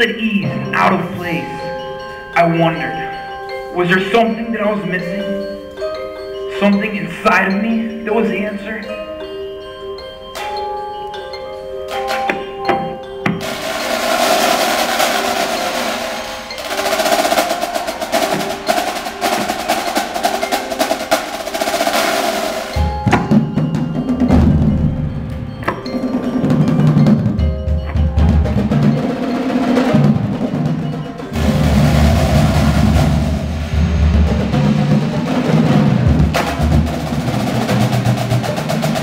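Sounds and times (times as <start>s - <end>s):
snare drum roll: 13.4s - 23.5s, 28.3s - 39.0s
heavy bass drums: 31.4s - 38.2s.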